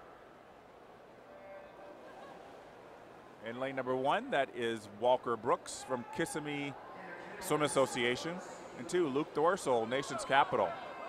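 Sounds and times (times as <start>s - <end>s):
indoor pool ambience: 0.0s - 11.0s.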